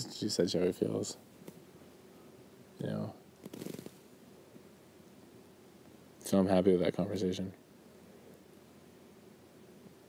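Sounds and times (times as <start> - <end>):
rustle: 0.0 - 10.0.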